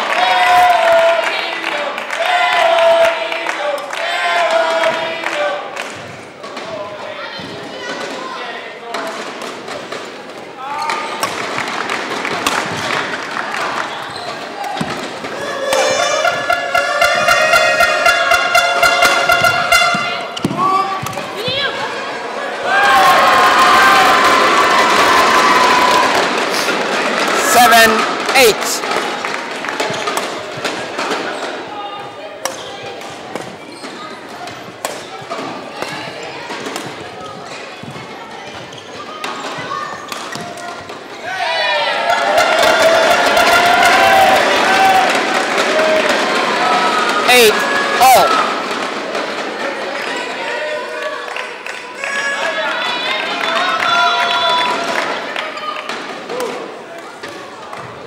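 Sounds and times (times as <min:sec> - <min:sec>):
rackets striking shuttlecock: 0:10.8 - 0:13.1, 0:32.4 - 0:37.9, 0:39.2 - 0:41.0
people shouting: 0:12.2 - 0:29.2, 0:39.0 - 0:51.2.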